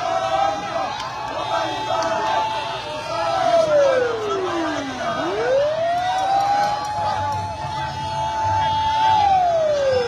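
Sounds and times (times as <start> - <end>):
crowd noise: 0.0 - 10.0
vehicle siren wailing: 0.0 - 10.0.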